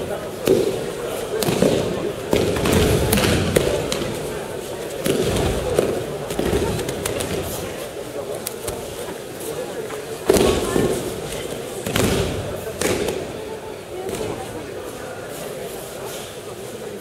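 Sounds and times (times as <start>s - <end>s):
murmur of many voices: 0.0s - 17.0s.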